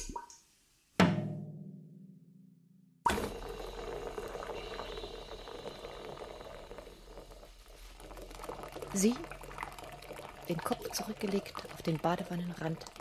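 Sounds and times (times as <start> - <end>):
drum hit: 1.0 - 2.4
tap water filling bathtub: 3.1 - 13.0.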